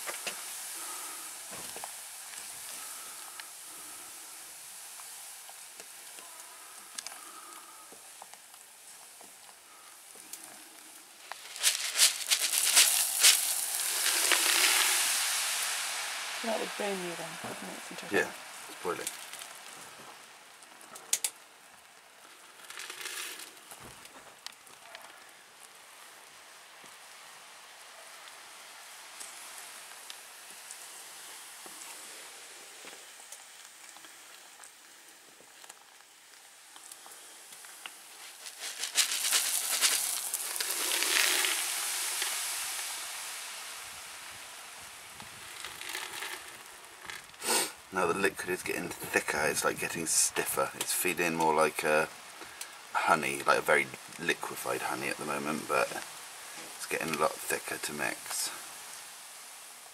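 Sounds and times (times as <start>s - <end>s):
hot liquid sizzling in a saucepan: 0.0s - 59.9s
wooden spoon stirring: 11.4s - 15.4s.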